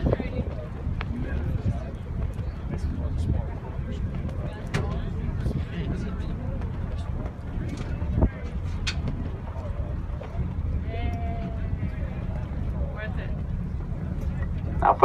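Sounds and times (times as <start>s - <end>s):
boat engine rumble: 0.0s - 15.0s
faint passenger chatter: 0.0s - 15.0s.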